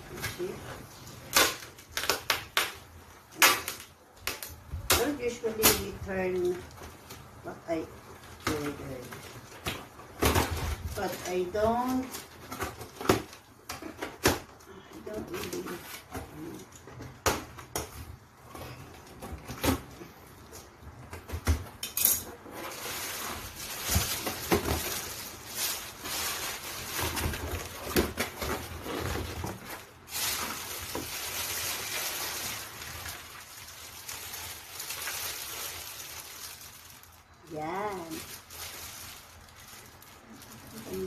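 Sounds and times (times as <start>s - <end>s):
packing paper rustling: 0.0s - 21.0s, 22.2s - 41.0s.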